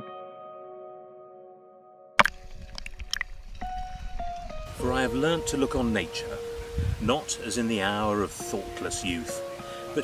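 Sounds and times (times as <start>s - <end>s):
water sloshing and splashing: 2.2s - 4.7s
low rumble of moving water: 2.2s - 7.2s.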